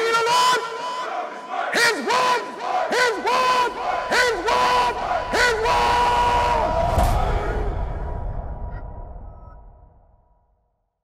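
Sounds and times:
voices shouting and chanting: 0.0s - 8.1s.

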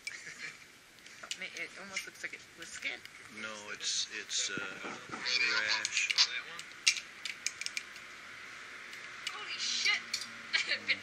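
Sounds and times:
faint steady background noise: 0.0s - 11.0s
metallic carabiner clicks: 6.6s - 8.1s.

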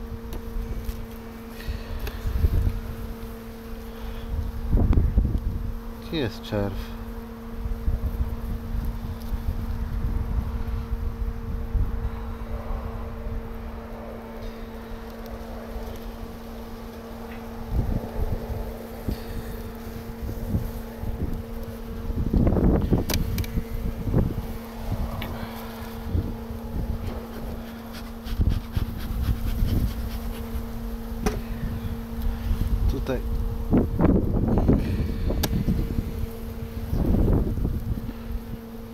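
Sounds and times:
honeybees buzzing: 0.0s - 38.9s
wind rumble on microphone: 0.0s - 38.9s.

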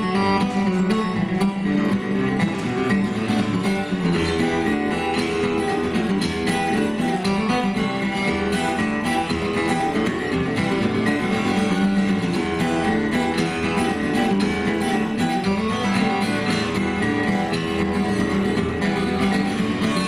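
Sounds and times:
acoustic guitars playing: 0.0s - 20.0s.

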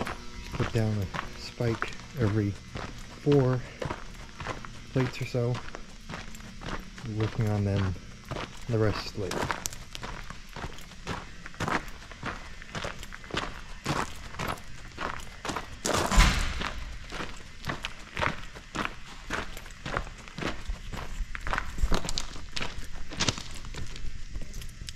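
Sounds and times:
footsteps on gravel: 0.0s - 24.9s
loud scuff or thump: 15.9s - 16.9s.

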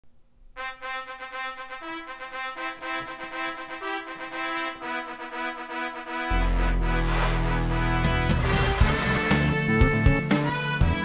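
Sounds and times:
brass fanfare: 0.6s - 11.0s.

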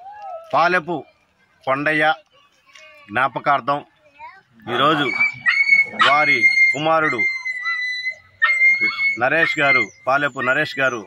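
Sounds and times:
man speaking: 4.6s - 7.3s, 8.8s - 11.0s
high-pitched whistling tone: 4.8s - 10.6s.

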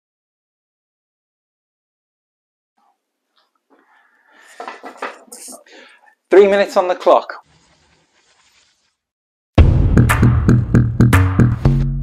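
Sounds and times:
clothing rustling: 7.4s - 9.1s.

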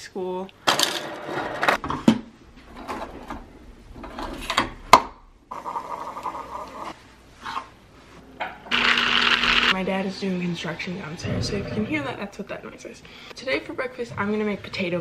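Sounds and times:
coffee maker pump humming: 8.7s - 9.7s.

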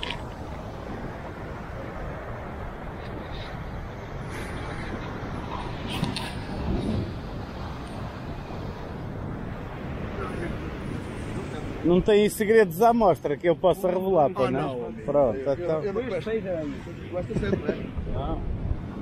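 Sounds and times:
wind noise: 0.0s - 12.7s, 14.4s - 19.0s.

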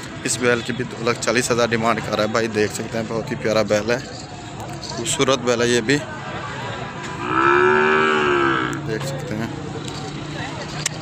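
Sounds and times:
cow mooing: 7.2s - 8.9s.

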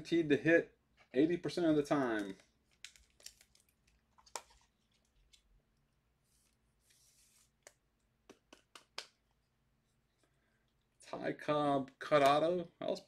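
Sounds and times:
trading cards rustling: 1.9s - 5.5s.

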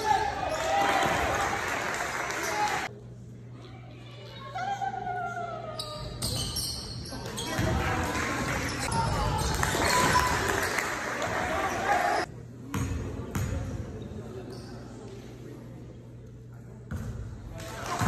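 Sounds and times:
spectators' voices: 7.0s - 12.4s.

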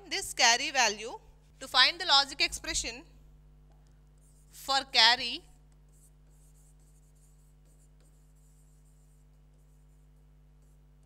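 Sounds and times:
faint electrical hum: 0.0s - 11.0s
stylus scratching on glass: 5.7s - 10.9s.

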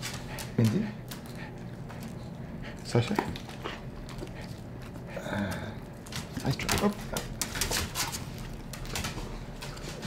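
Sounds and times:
dog panting softly: 0.0s - 5.2s.

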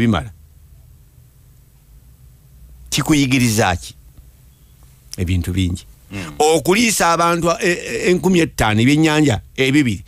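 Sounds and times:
faint low hum: 0.0s - 10.0s
man speaking: 2.9s - 4.0s, 5.2s - 10.0s.

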